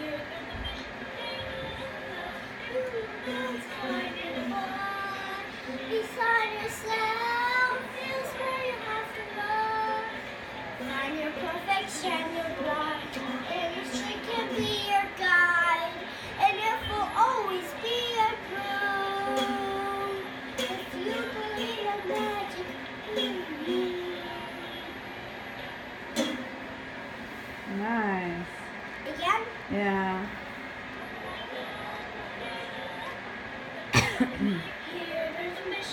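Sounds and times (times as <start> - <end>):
girl singing: 0.0 - 25.0, 34.0 - 35.9.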